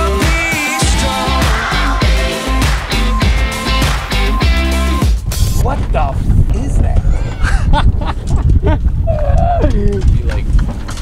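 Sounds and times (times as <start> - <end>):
wind buffeting microphone: 5.2 - 11.0.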